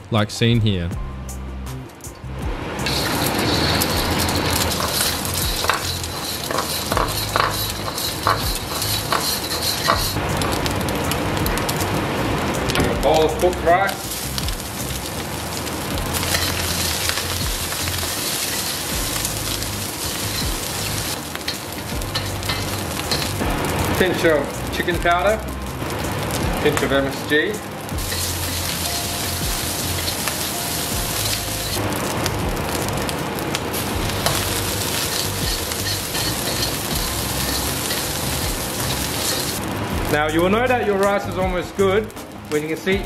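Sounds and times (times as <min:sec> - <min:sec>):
food sizzling in a wok: 0:02.7 - 0:43.0
stirring clicks and scrapes: 0:02.8 - 0:11.8, 0:14.2 - 0:23.4, 0:34.0 - 0:39.6.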